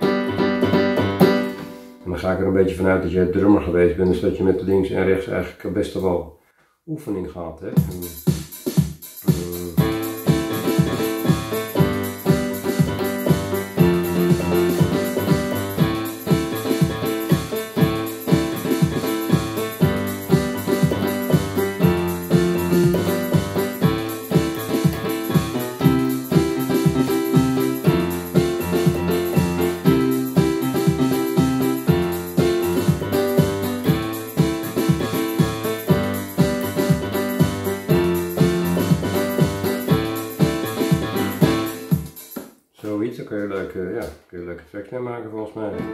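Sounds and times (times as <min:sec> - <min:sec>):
keyboard playing rhythmic chords: 0:00.0 - 0:02.0, 0:07.8 - 0:42.4.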